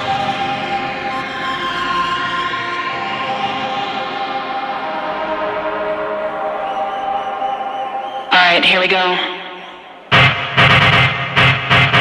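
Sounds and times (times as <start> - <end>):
held synthesizer chords: 0.0 - 12.0.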